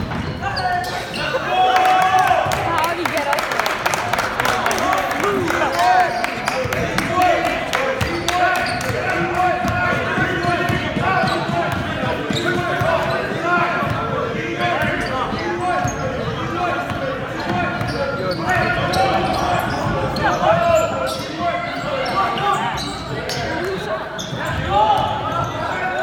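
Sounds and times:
sneakers squeaking: 0:00.0 - 0:03.3, 0:04.4 - 0:26.0
players and spectators voices: 0:00.0 - 0:26.0.

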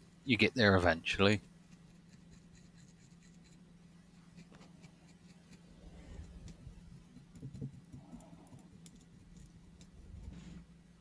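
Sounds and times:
low steady hum: 0:00.0 - 0:11.0
stiff brush scrubbing: 0:01.6 - 0:10.7.

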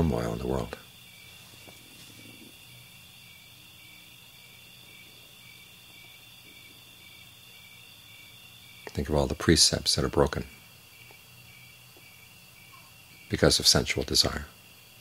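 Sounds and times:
insects chirping: 0:00.0 - 0:15.0.

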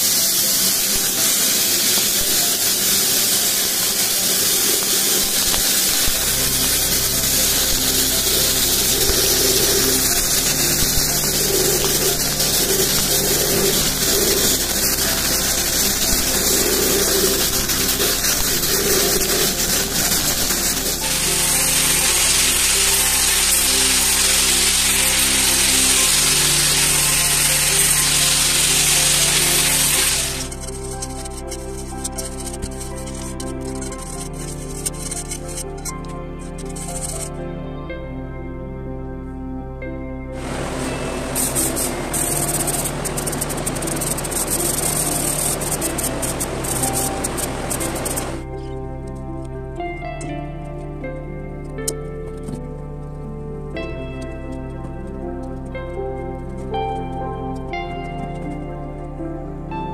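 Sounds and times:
sandblaster hissing: 0:00.0 - 0:35.5, 0:40.4 - 0:48.5
background music: 0:00.0 - 0:59.9.

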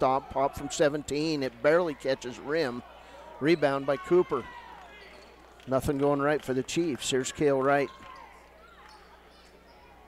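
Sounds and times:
faint basketball game: 0:00.0 - 0:10.0.

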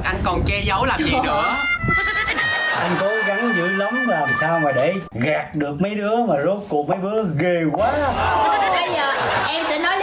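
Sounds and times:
steady high tone: 0:01.4 - 0:05.2.

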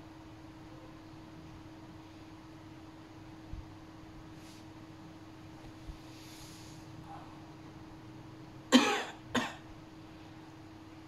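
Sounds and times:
man coughing: 0:08.7 - 0:09.6.

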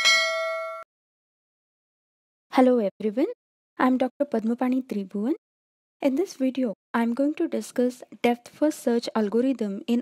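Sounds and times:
notification bell ding: 0:00.0 - 0:00.9.

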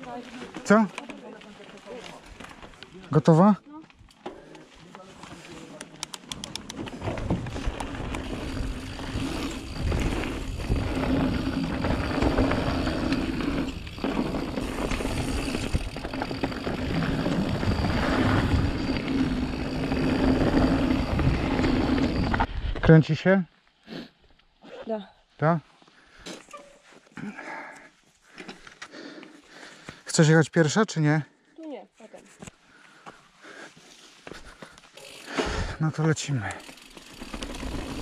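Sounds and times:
bike rattling: 0:00.0 - 0:22.9, 0:34.3 - 0:38.0
bike tyre noise on dirt: 0:00.0 - 0:23.2, 0:32.9 - 0:38.0
wheels clicking over wooden slats: 0:06.1 - 0:22.5, 0:35.0 - 0:38.0.

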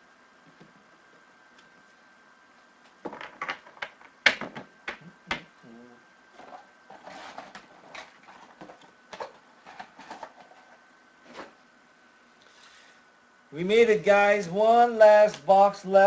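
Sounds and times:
faint high whine: 0:10.5 - 0:16.0.

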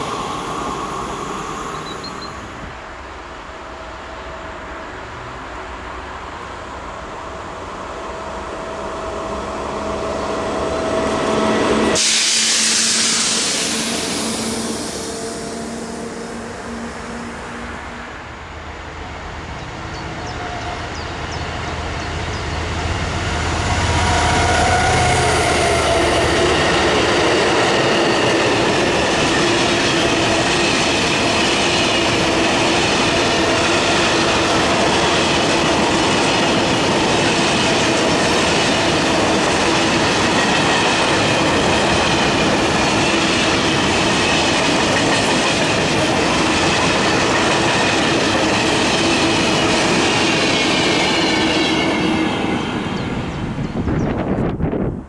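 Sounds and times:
diesel locomotive engine hum: 0:00.0 - 0:55.0
train wheels rolling on rails: 0:00.0 - 0:55.0.

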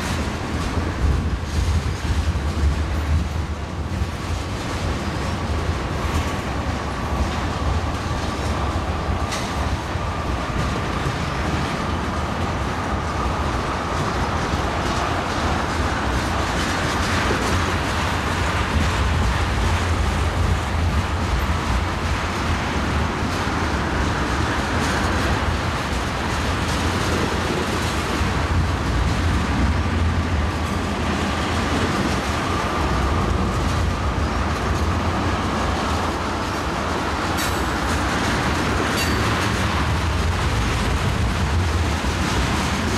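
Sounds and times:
clickety-clack over rail joints: 0:00.0 - 0:42.9
train wheels rumbling on rails: 0:00.0 - 0:42.9.

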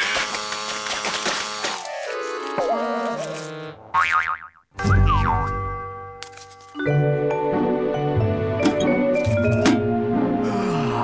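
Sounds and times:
electric buzz with crackles: 0:00.0 - 0:03.8.

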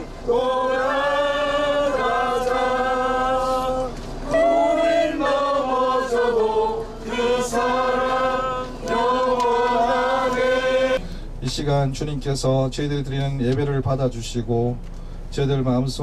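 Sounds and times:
group singing worship song: 0:00.0 - 0:11.1.

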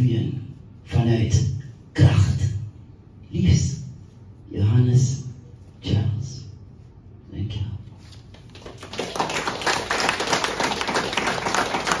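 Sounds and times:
audience clapping: 0:08.4 - 0:12.0.

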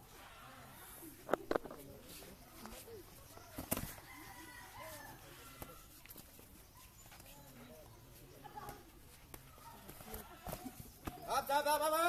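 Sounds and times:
faint background chatter: 0:00.0 - 0:12.0.

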